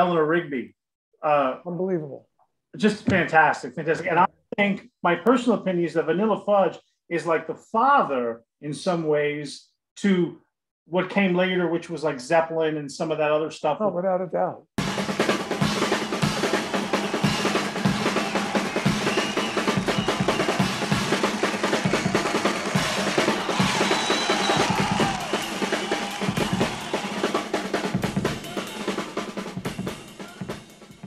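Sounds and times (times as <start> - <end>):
rock drum kit playing: 14.8 - 31.0.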